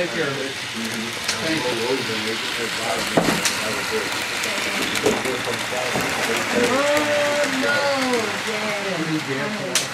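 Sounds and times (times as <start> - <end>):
murmur of people talking: 0.0 - 9.9
model train wheels clattering: 0.7 - 9.9.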